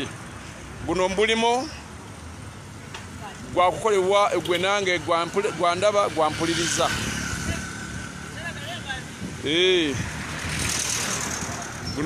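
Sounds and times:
steady traffic noise: 0.0 - 12.0.

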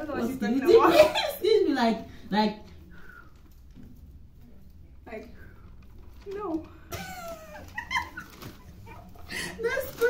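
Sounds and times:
woman laughing: 6.9 - 9.7.

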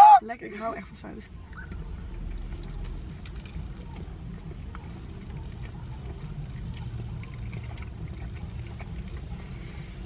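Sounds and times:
low car cabin rumble: 0.0 - 10.0
person chewing crispy food: 4.6 - 10.0.

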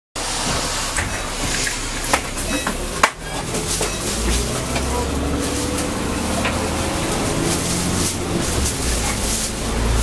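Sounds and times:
bus engine running: 0.2 - 10.0
tyres hissing on wet road: 0.2 - 10.0.

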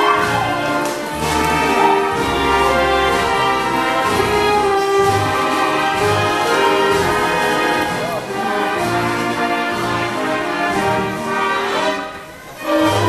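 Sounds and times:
orchestra playing show tune: 0.0 - 13.0.

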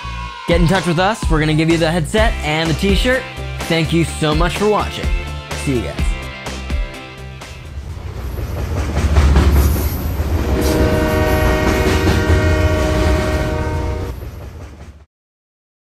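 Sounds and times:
train rumbling past: 6.5 - 15.1
train horn chord: 10.4 - 14.2.

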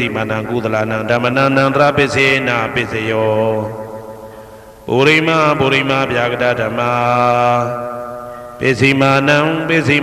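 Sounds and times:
man chanting: 0.0 - 4.2, 4.9 - 10.0.

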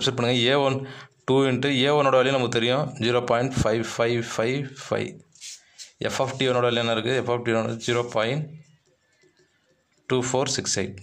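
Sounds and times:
man talking: 0.0 - 5.3, 6.0 - 8.6, 10.1 - 11.0.

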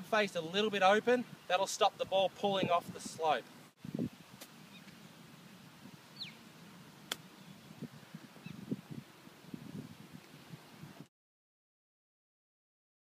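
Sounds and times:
low bird calls: 4.6 - 5.1, 6.1 - 6.5, 7.2 - 8.8.

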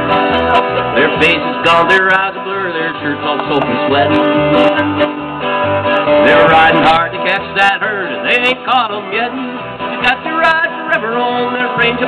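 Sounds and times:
electric bass: 0.0 - 12.0
fiddle: 0.0 - 12.0
strummed acoustic guitar: 0.0 - 12.0.

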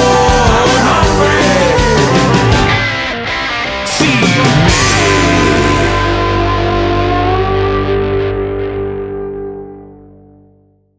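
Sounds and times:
guitar note sliding upward: 0.0 - 10.5
bass guitar: 0.0 - 10.9
distorted electric guitar chord: 0.0 - 10.9.

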